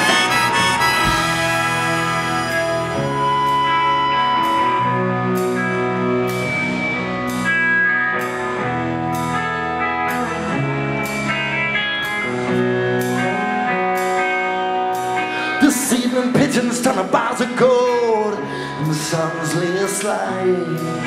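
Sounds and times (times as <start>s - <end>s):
electric guitar chords: 0.0s - 21.0s
rock band playing: 0.0s - 21.0s.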